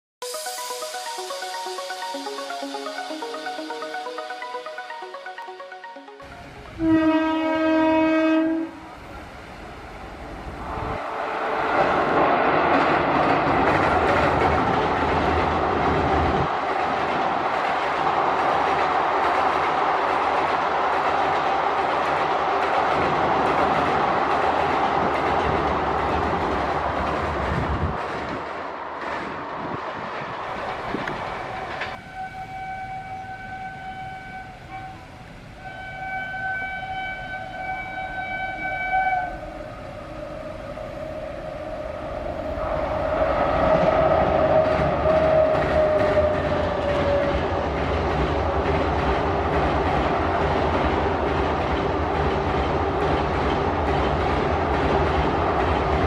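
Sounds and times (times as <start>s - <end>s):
train horn blasts: 5.8s - 9.0s, 32.0s - 40.6s
train rumble and clatter on bridge: 7.0s - 32.6s, 37.5s - 56.0s.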